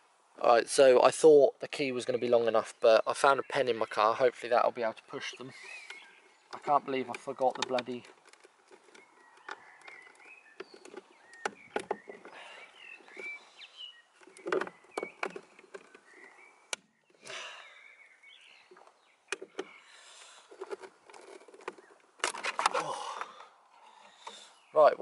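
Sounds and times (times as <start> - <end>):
plastic clicks and knocks: 5.8 - 12.3, 14.2 - 16.9, 20.5 - 22.8.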